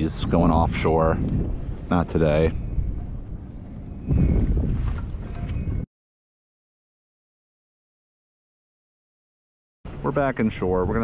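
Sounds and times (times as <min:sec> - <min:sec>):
wind buffeting microphone: 0:00.0 - 0:05.9.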